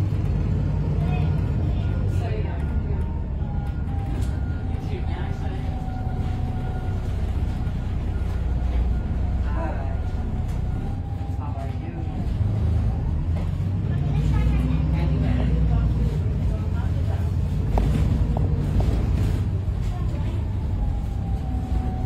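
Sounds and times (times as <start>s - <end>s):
bus diesel engine rumbling: 0.0s - 22.0s.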